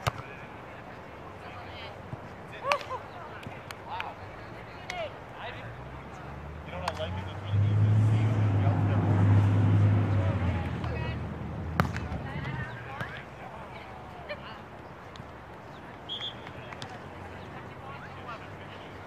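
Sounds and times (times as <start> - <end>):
distant voices: 0.4 - 19.0
vehicle engine drone: 5.7 - 12.8
volleyball being struck: 11.7 - 13.1.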